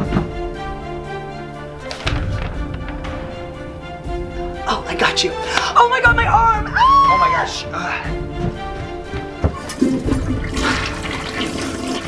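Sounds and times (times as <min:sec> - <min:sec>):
toilet flushing: 0:09.6 - 0:12.0.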